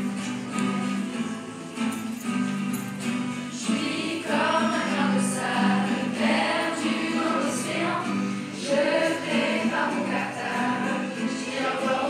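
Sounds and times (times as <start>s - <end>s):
low musical accompaniment: 0.0s - 12.0s
choir singing: 3.5s - 12.0s.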